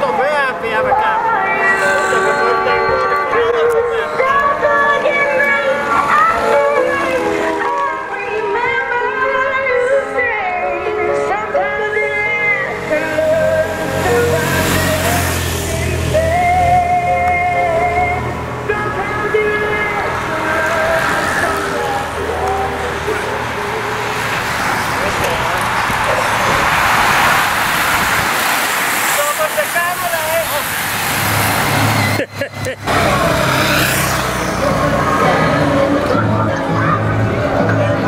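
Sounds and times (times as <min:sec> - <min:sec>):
bicycles passing close by: 0:12.2 - 0:37.8.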